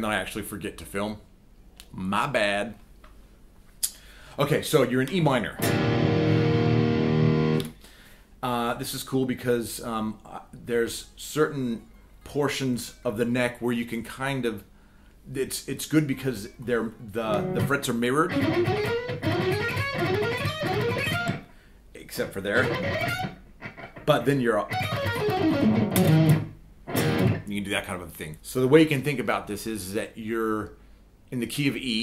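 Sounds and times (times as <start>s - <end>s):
electric guitar ringing: 5.6s - 7.7s, 17.3s - 21.4s, 22.6s - 27.5s.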